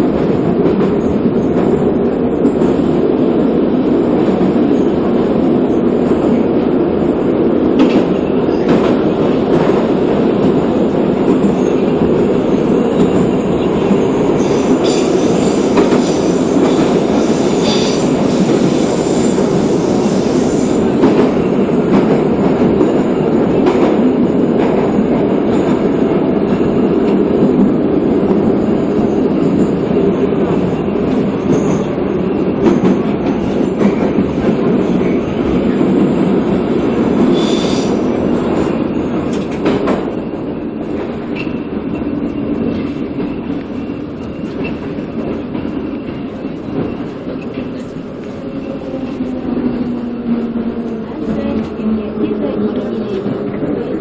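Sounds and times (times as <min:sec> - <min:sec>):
train rumble in tunnel: 0:00.0 - 0:54.0.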